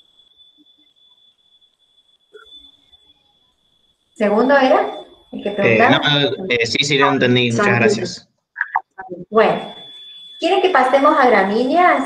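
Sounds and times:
thin high-pitched whine: 0.0 - 12.0.

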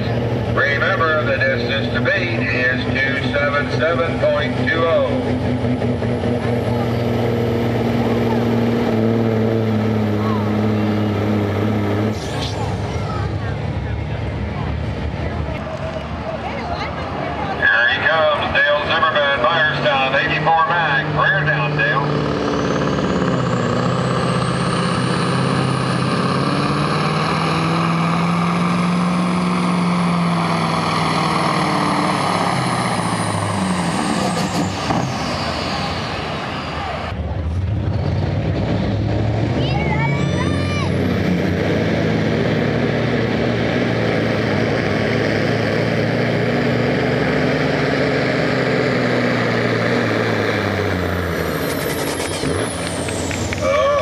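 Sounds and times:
diesel truck engine: 0.0 - 54.0.

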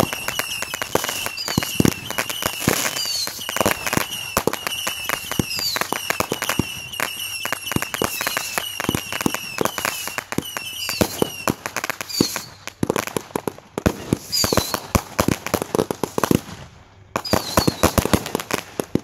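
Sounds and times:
high firework whistle: 0.0 - 12.8, 14.0 - 14.9, 17.2 - 18.3
falling firework whistles: 0.0 - 12.9, 13.8 - 15.1, 17.2 - 19.0
fireworks bangs and crackles: 0.0 - 19.0.

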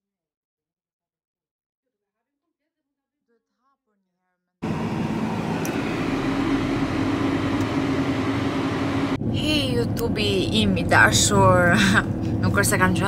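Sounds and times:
car engine and road noise: 4.6 - 13.0.

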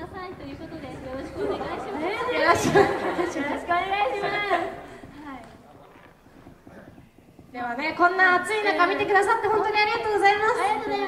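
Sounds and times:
women chattering through microphones: 0.0 - 11.0.

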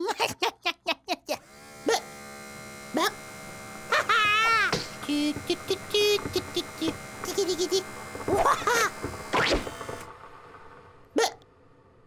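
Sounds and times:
steady electric hum: 1.4 - 12.0.

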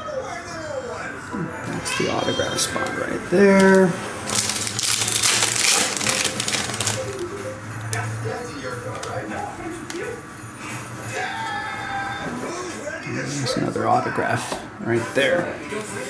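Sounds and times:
television music and voices: 0.0 - 16.0
trading cards rattling and rustling: 2.8 - 7.2.

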